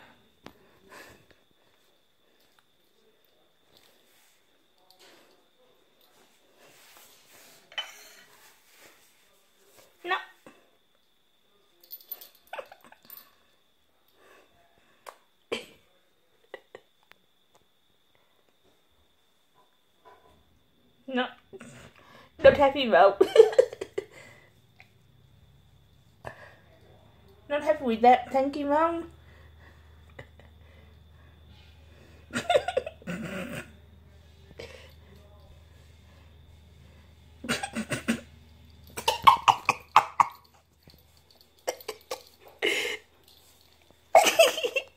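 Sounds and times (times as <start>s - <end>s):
person coughing: 37.5s - 38.3s.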